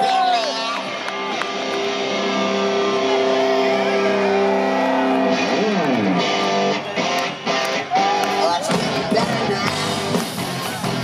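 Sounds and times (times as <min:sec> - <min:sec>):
live rock band: 0:00.1 - 0:11.0.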